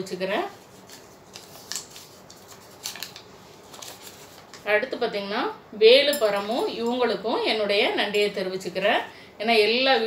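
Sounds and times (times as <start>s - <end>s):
paper rustling: 0.6s - 4.7s.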